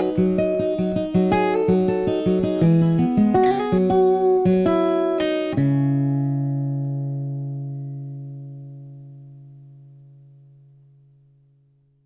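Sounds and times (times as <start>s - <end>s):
acoustic guitar chord ringing: 0.0s - 11.9s.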